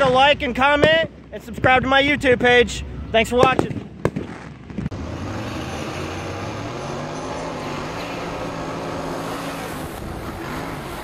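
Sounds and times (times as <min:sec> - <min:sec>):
race car engine running hard: 0:04.9 - 0:11.0.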